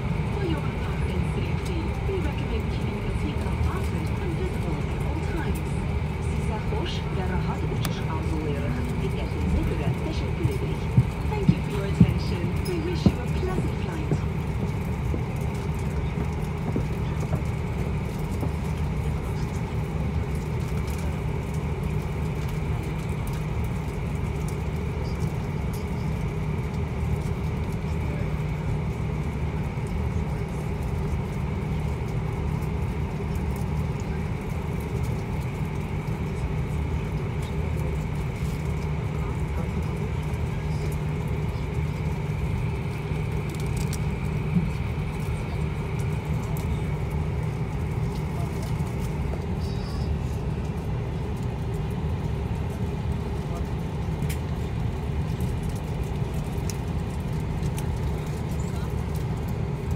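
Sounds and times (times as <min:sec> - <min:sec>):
aircraft engines low hum: 0:00.0 - 0:59.9.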